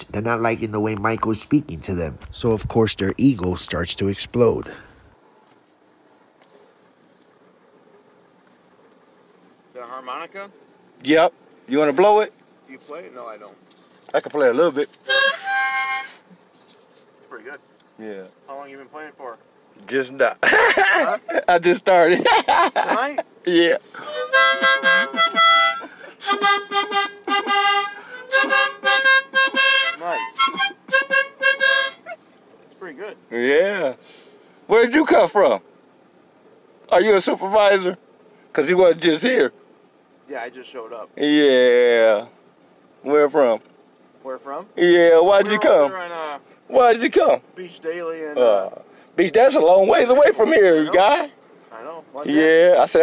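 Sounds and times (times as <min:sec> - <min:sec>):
man speaking: 0:00.0 - 0:05.0, 0:30.0 - 0:30.5, 0:44.7 - 0:46.1
faint background noise: 0:00.0 - 0:53.0
harmonica chords: 0:15.0 - 0:16.3, 0:24.0 - 0:32.2.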